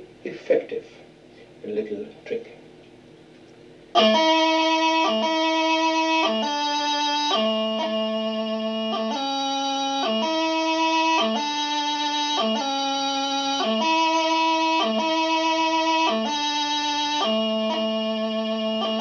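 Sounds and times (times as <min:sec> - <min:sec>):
practice chanter playing slow tune: 0:03.9 - 0:19.0.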